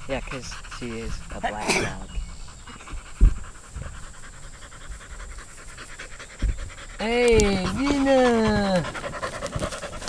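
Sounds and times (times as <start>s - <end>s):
dog panting: 0.0s - 10.0s
low thump: 2.1s - 4.0s.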